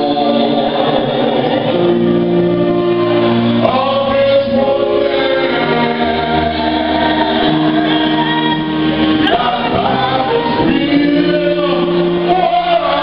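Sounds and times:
man singing into a microphone: 0:00.0 - 0:02.6, 0:03.5 - 0:13.0
choir singing: 0:00.0 - 0:13.0
instrumental backing: 0:00.0 - 0:13.0.

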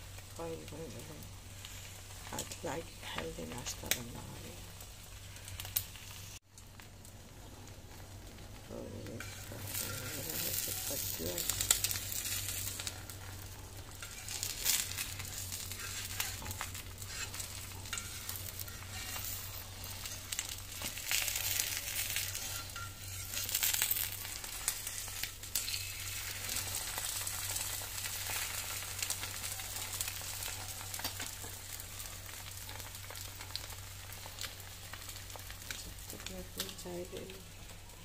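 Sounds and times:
egg sizzling in oil: 0:00.0 - 0:38.0.

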